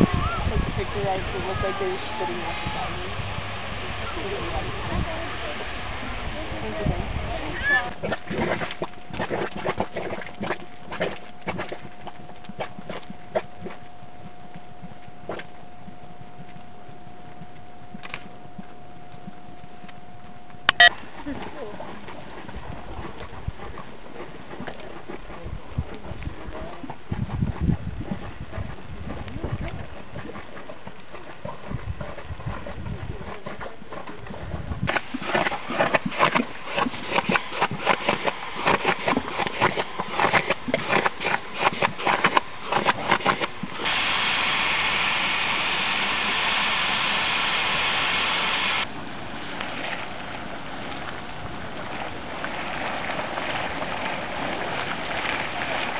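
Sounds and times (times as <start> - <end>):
mud pool popping and crackling: 6.6 - 55.9
steady loud hiss: 43.9 - 48.8.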